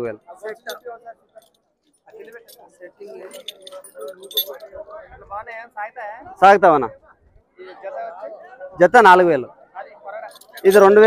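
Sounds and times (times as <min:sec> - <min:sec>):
background chatter: 0:00.0 - 0:11.0
metal chain jingling: 0:00.5 - 0:00.8, 0:01.4 - 0:04.7, 0:10.3 - 0:11.0.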